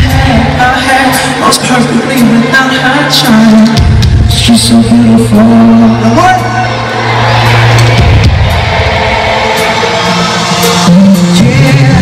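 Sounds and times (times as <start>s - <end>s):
crowd noise: 0.0s - 12.0s
live pop band over sound system: 0.0s - 12.0s.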